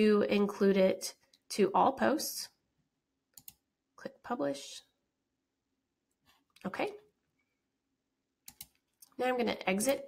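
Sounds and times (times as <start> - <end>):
computer mouse clicks: 3.3 - 3.7, 8.4 - 9.2.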